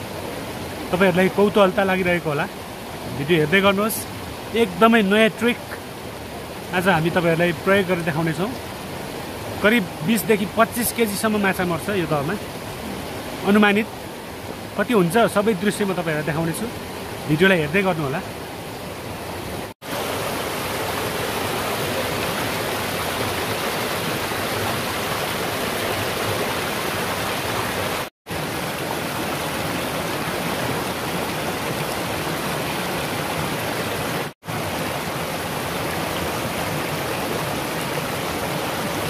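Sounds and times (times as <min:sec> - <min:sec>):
stream rushing over boulders: 0:00.0 - 0:39.0.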